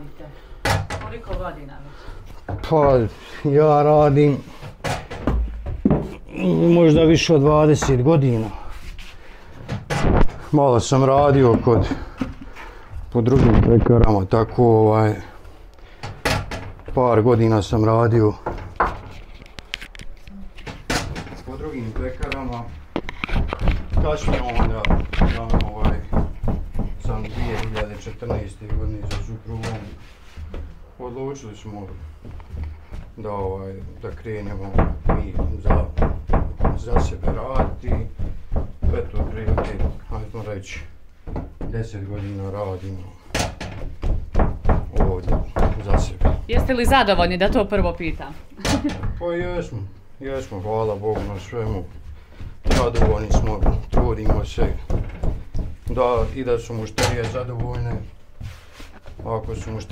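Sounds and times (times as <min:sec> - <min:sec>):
dough knocking on wooden table: 0:23.3 - 0:29.7, 0:32.2 - 0:40.3, 0:43.4 - 0:48.1, 0:51.1 - 0:58.5
person talking: 0:45.0 - 0:49.4.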